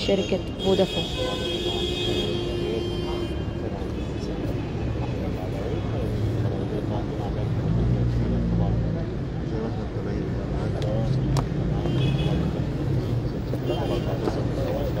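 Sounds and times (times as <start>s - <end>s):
crowd murmur: 0.0s - 15.0s
vehicle engine rumbling: 0.0s - 15.0s.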